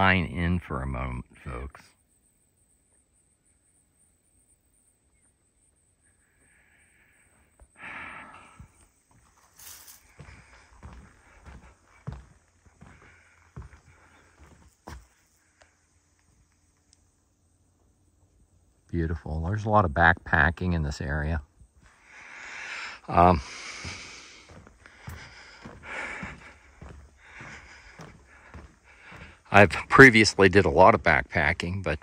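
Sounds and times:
footsteps on wooden boardwalk: 8.6s - 15.3s, 23.1s - 30.6s.

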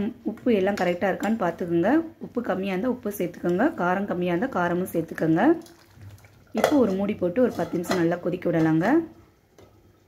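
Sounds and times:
person talking: 6.6s - 9.2s.

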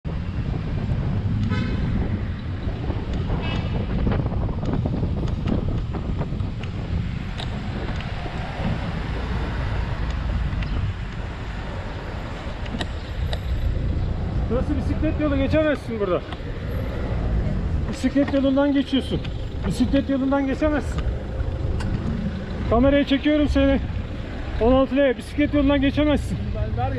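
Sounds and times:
city traffic: 0.0s - 26.9s
wind rushing over microphone: 0.0s - 26.9s.

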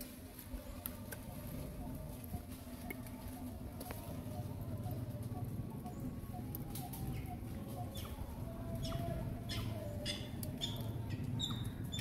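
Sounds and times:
low outdoor rumble: 0.0s - 12.0s
birds chirping: 0.2s - 12.0s.

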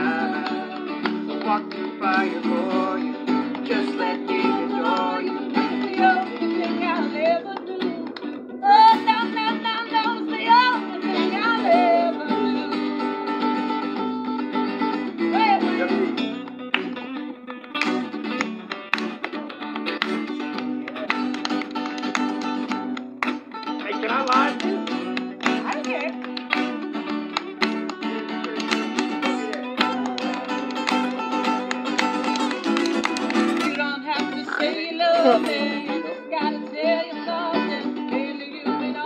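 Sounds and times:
person singing: 0.0s - 13.4s, 15.2s - 16.4s, 28.0s - 39.0s
acoustic guitar strumming: 0.0s - 39.0s.

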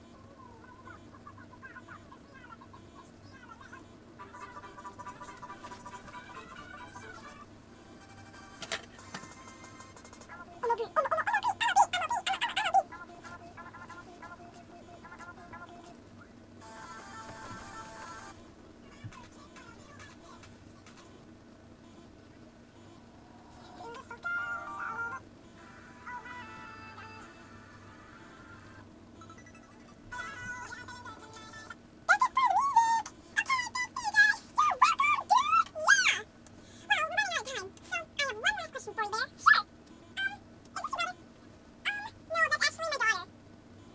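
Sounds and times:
squeaky chirping gibberish voice: 0.6s - 7.5s, 10.2s - 14.0s, 26.1s - 36.3s, 41.8s - 43.3s.

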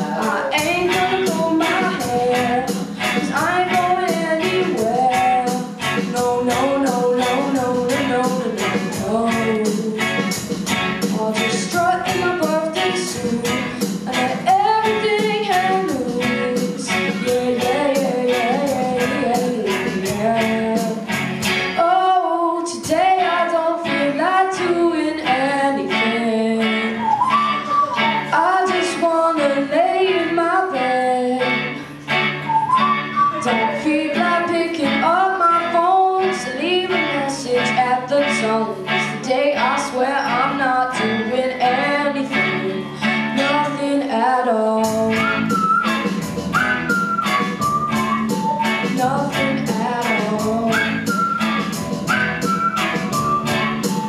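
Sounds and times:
male lead vocal: 0.0s - 10.1s
drum kit with cymbals: 0.0s - 21.8s, 44.8s - 54.0s
live band playing: 0.0s - 54.0s.

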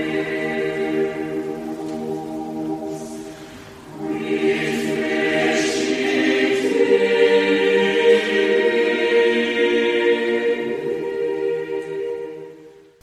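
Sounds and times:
choir singing long held notes: 0.0s - 13.0s.

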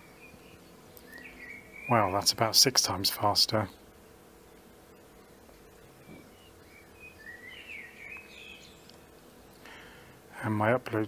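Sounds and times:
man speaking: 1.9s - 3.7s, 10.3s - 11.0s
faint high chirps: 6.0s - 9.0s.

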